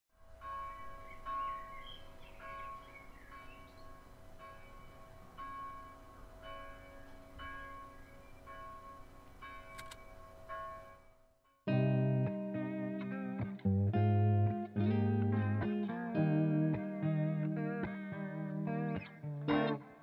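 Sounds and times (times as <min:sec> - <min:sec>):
church bell tolling: 0:00.2 - 0:11.2.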